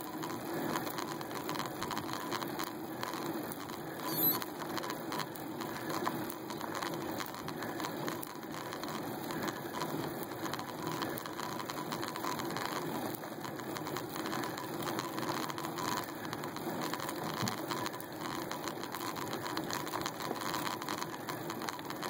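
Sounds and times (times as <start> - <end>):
bicycle tyre and road noise: 0.0 - 22.0.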